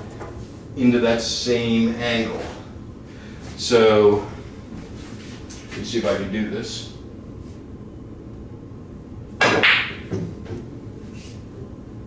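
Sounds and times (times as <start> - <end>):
cue striking cue ball: 9.4 - 10.3.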